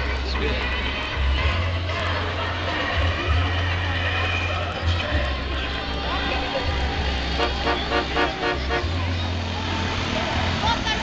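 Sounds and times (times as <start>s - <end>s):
low engine rumble: 0.0s - 11.0s
vehicle horn tooting: 7.4s - 9.0s.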